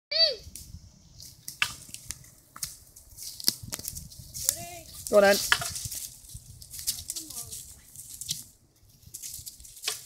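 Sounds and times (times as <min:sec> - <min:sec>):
twigs cracking: 0:00.6 - 0:10.0
footsteps in dry leaves: 0:01.2 - 0:10.0.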